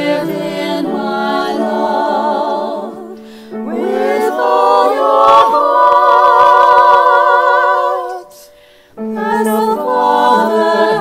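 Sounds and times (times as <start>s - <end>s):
mixed choir singing a cappella: 0.0s - 11.0s.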